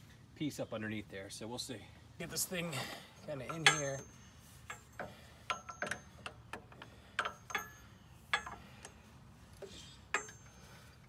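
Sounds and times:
hand tool clinking on steel: 0:03.2 - 0:09.0, 0:09.6 - 0:11.0.

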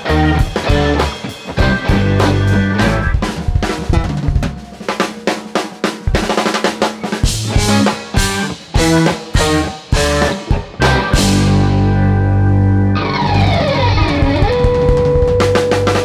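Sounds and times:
live band playing: 0:00.0 - 0:16.0
drum hits: 0:00.5 - 0:11.8.

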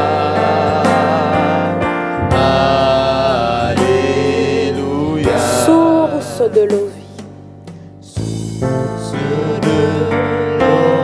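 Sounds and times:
person singing gospel song: 0:00.0 - 0:07.1, 0:08.0 - 0:11.0
instrumental accompaniment with bass: 0:00.0 - 0:11.0.

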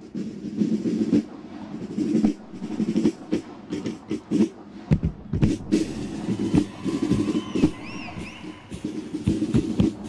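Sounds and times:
marching drums playing a cadence: 0:00.0 - 0:10.0.

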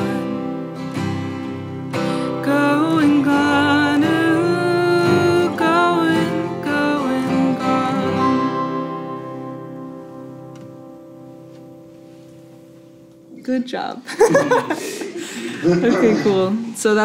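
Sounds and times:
band with acoustic guitars: 0:00.0 - 0:13.6.

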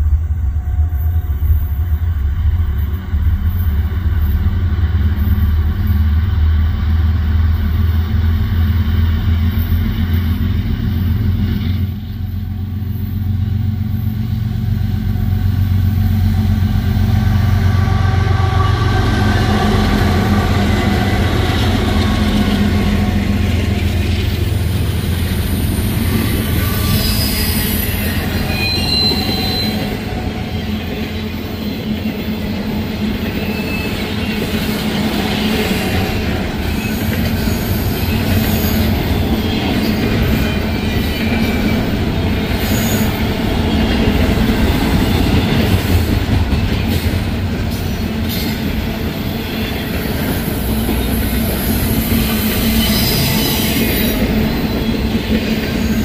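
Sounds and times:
diesel locomotive engine hum: 0:00.0 - 0:56.0
wheel squeals: 0:26.2 - 0:30.1.

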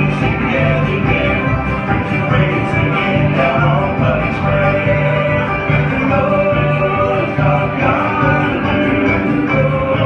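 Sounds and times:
picked acoustic strings: 0:00.0 - 0:10.0
upright bass notes: 0:00.0 - 0:10.0.

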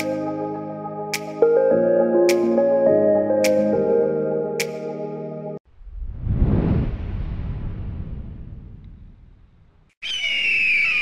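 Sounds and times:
music: 0:00.0 - 0:05.6.

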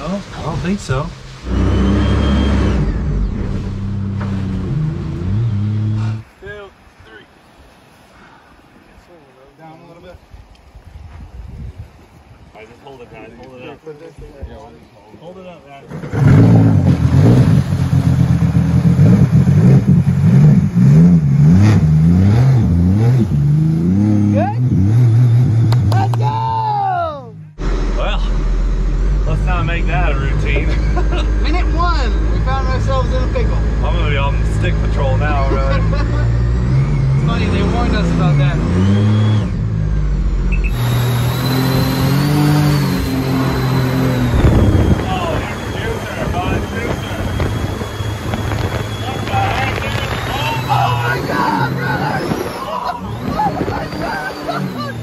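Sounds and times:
deep rumble: 0:00.0 - 0:06.4, 0:27.3 - 0:55.0
jet boat engine revving: 0:00.0 - 0:06.7, 0:15.8 - 0:26.8, 0:27.4 - 0:55.0.

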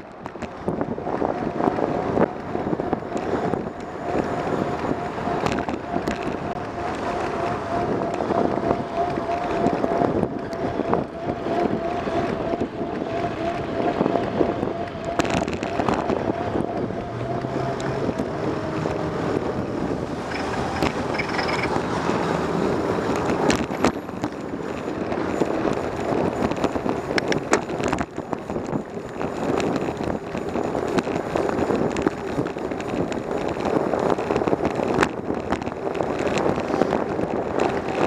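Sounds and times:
rolling road noise: 0:00.0 - 0:38.0
wind buffeting microphone: 0:00.0 - 0:38.0.

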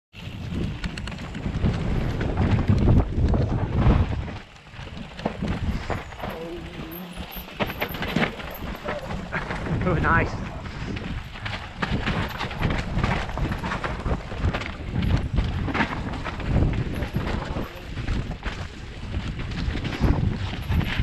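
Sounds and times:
bike rattling and knocking: 0:00.2 - 0:21.0
tyres rolling over dirt: 0:00.2 - 0:21.0
wind rumbling on microphone: 0:00.2 - 0:21.0.

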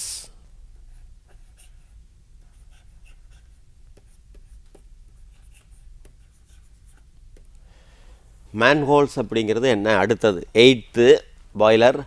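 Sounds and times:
low steady hum: 0:00.0 - 0:12.0
stylus tapping and scratching: 0:01.0 - 0:07.6.

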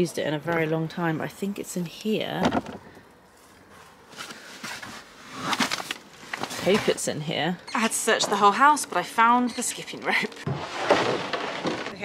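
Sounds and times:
items shifting in plastic box: 0:10.4 - 0:12.0
short rustles and knocks: 0:10.4 - 0:12.0.

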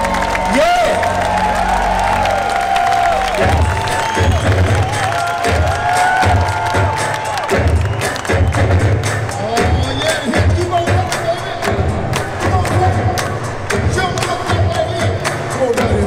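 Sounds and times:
crowd cheering and clapping: 0:00.0 - 0:16.0
pulsing bass line: 0:00.0 - 0:16.0.

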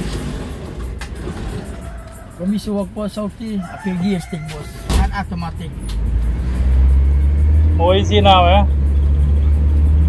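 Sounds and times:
minibus engine rumbling: 0:00.0 - 0:10.0.

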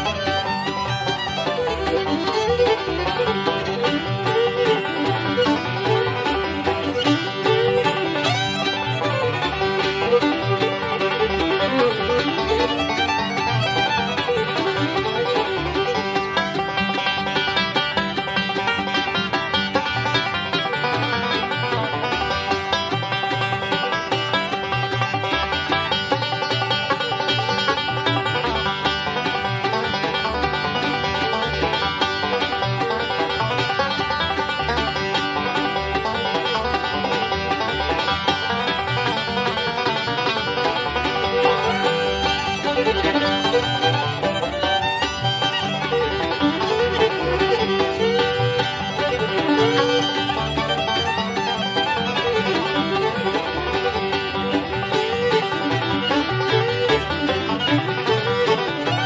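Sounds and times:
banjo: 0:00.0 - 0:59.0
bluegrass band playing: 0:00.0 - 0:59.0
fiddle: 0:00.0 - 0:59.0.

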